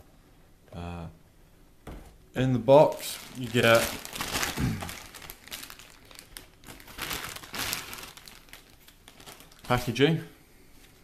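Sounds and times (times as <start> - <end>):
plastic packaging crinkling: 2.8 - 10.2.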